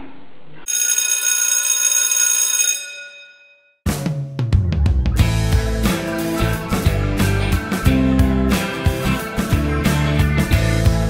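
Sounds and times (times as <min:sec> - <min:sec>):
buzzing ringing tone: 0:00.7 - 0:03.8.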